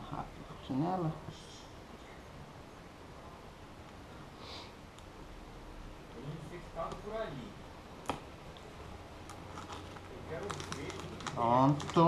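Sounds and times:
person speaking: 0:10.0 - 0:12.0.

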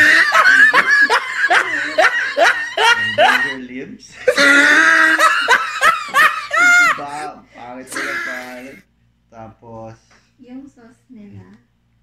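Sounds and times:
people laughing: 0:00.0 - 0:08.8.

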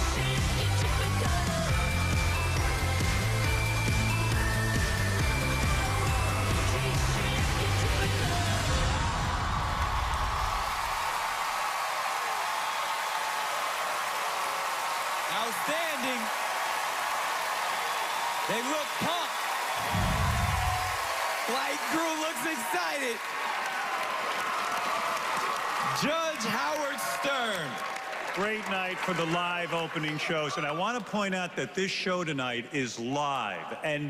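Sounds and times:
large audience cheering: 0:00.0 - 0:31.9.

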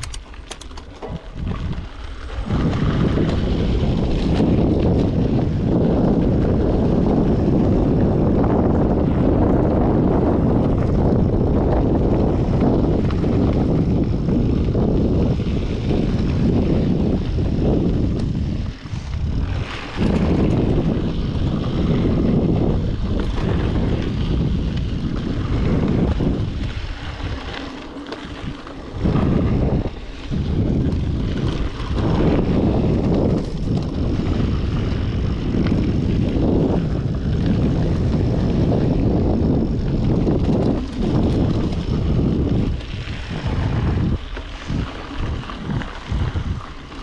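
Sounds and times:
bike knocking: 0:00.0 - 0:43.0
tyres on dirt trail: 0:00.0 - 0:47.0
wind rumbling on microphone: 0:00.0 - 0:47.0.

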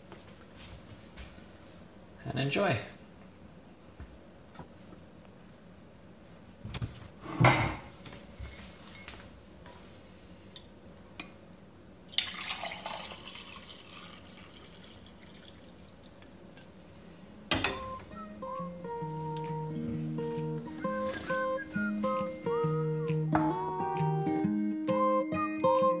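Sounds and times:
coffee pouring into mug: 0:12.1 - 0:16.4
glass carafe clunking on metal grate: 0:17.5 - 0:18.0
music: 0:17.7 - 0:26.0.

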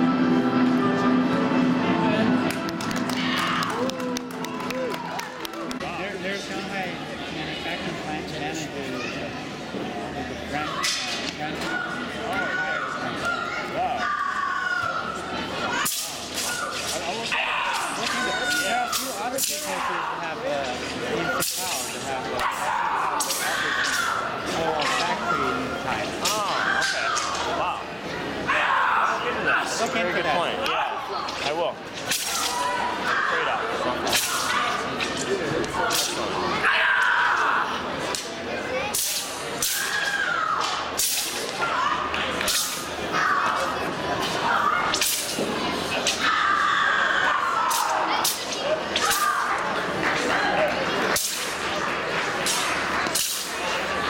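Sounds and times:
crowd chatter in hall: 0:00.0 - 0:54.0
sharp whip-like cracks: 0:23.2 - 0:24.1, 0:32.0 - 0:32.6, 0:34.1 - 0:34.8, 0:38.9 - 0:41.6, 0:42.4 - 0:42.9, 0:44.9 - 0:45.4, 0:47.7 - 0:49.5, 0:51.1 - 0:51.7, 0:52.4 - 0:53.6
sword swishes and slaps: 0:32.0 - 0:32.6, 0:34.1 - 0:35.2, 0:38.9 - 0:40.0, 0:40.6 - 0:41.6, 0:42.4 - 0:42.9, 0:44.9 - 0:45.4, 0:47.7 - 0:49.4, 0:51.1 - 0:51.6, 0:52.4 - 0:53.6.

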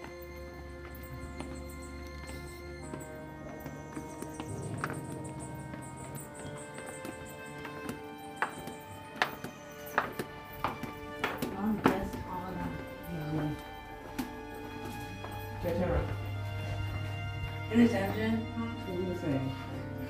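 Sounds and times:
background music: 0:00.0 - 0:20.0
flip-flop footsteps on stone steps: 0:00.0 - 0:20.0.

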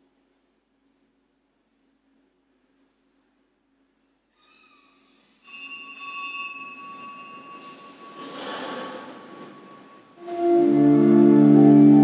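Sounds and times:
small bell ringing: 0:05.4 - 0:10.2
congregation rustling standing up: 0:07.3 - 0:10.6.

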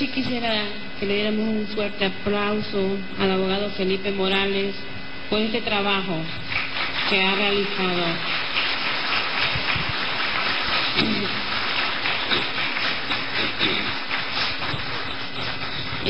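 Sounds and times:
audience applauding: 0:06.5 - 0:16.0.

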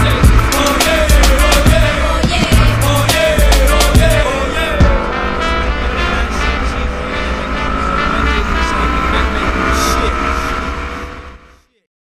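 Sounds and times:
motorcycle engine accelerating: 0:00.0 - 0:11.6.

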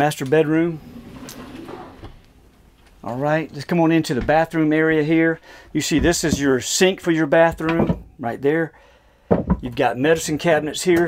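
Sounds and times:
door rustle: 0:00.8 - 0:03.2.

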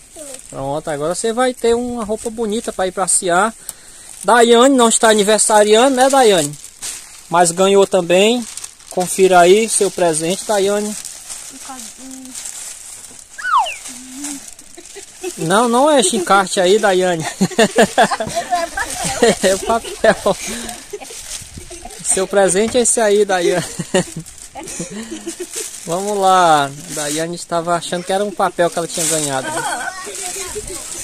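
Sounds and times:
plastic bag crinkling: 0:02.2 - 0:31.0
high chirp sweeping down: 0:13.3 - 0:13.9
soft low voices: 0:13.6 - 0:15.5.

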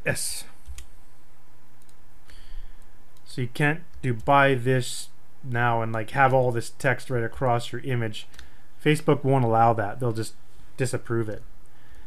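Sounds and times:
steady low hum: 0:00.0 - 0:12.0
computer mouse clicks: 0:00.6 - 0:00.9, 0:01.8 - 0:02.0, 0:08.2 - 0:08.5.

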